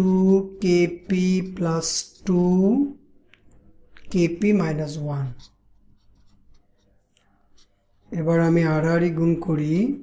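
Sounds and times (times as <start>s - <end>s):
person speaking: 0.0s - 10.0s
marker writing on paper: 4.1s - 8.5s.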